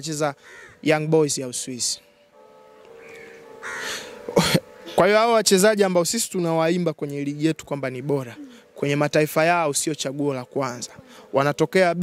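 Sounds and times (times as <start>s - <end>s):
crows cawing: 0.3s - 1.0s, 2.8s - 5.0s, 10.9s - 11.3s.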